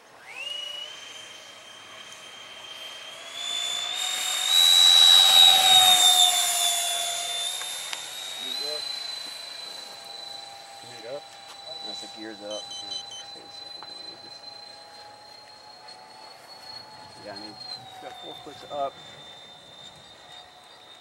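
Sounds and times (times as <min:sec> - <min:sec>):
model jet fan whine: 0:00.0 - 0:21.0.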